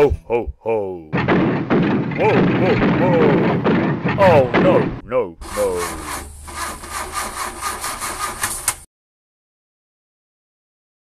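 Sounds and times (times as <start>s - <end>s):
engine cranking without starting: 1.2s - 8.9s.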